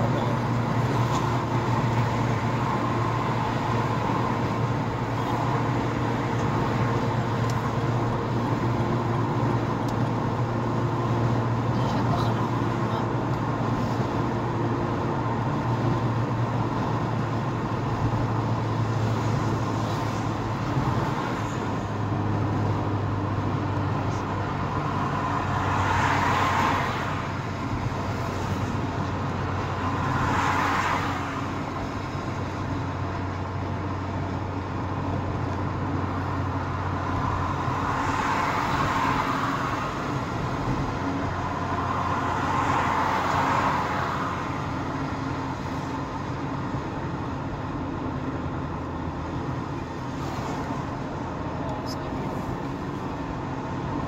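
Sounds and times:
car engine and tyre road noise: 0:00.0 - 0:54.0
passing traffic rushes: 0:00.0 - 0:54.0.

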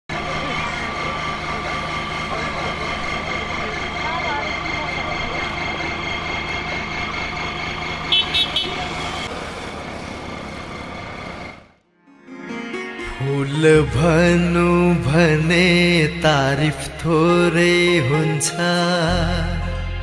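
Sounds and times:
engine hum: 0:00.1 - 0:11.9, 0:13.0 - 0:20.0
vehicle horn tooting: 0:08.1 - 0:09.0.

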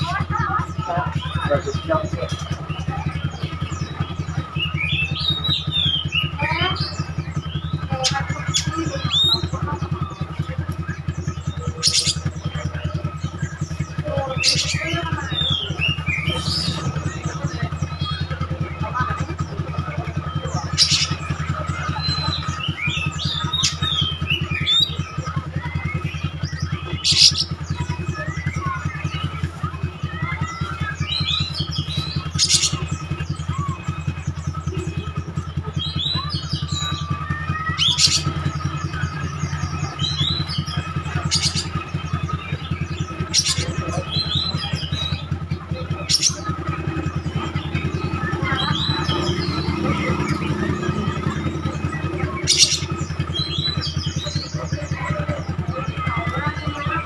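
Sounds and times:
bird singing whistled phrases: 0:00.0 - 0:57.0
low engine hum: 0:00.0 - 0:57.0.

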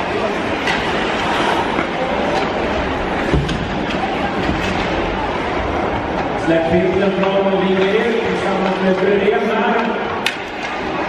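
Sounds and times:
crowd murmur: 0:00.0 - 0:11.0
hockey stick or puck click: 0:09.8 - 0:10.8.

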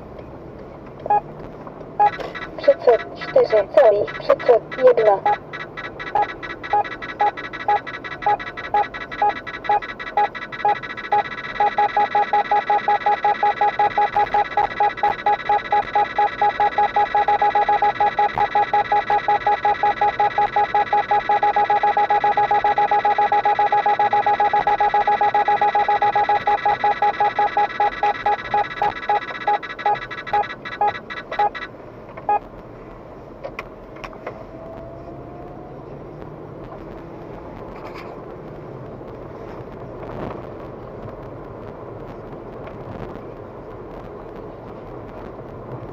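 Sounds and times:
car road noise: 0:00.0 - 0:45.9
radar detector beeping: 0:02.0 - 0:31.7.

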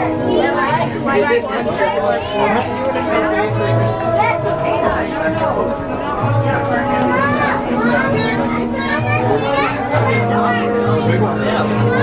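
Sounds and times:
background music: 0:00.0 - 0:12.0
people talking: 0:00.0 - 0:12.0.

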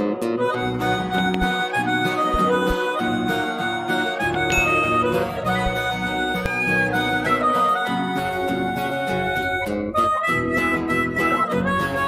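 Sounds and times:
acoustic guitar strumming: 0:00.0 - 0:10.9
harmonica melody: 0:00.0 - 0:12.0.

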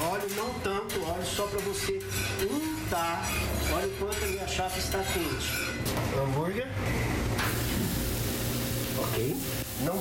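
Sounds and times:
burger patty sizzling on griddle: 0:07.4 - 0:10.0.

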